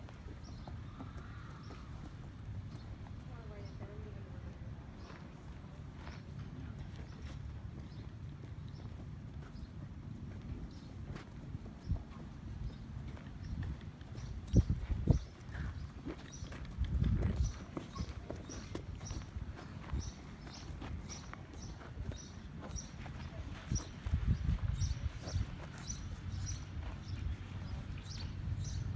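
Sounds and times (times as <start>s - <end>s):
hooves clip-clopping on pavement: 0.0s - 28.9s.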